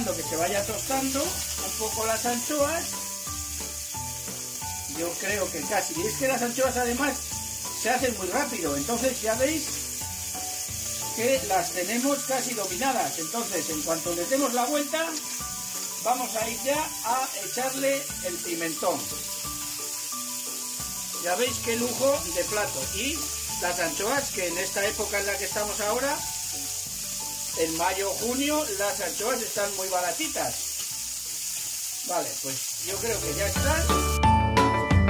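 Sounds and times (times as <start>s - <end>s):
background music of held chords: 0.0s - 32.1s, 32.8s - 35.0s
fish sizzling in hot oil: 0.0s - 34.4s.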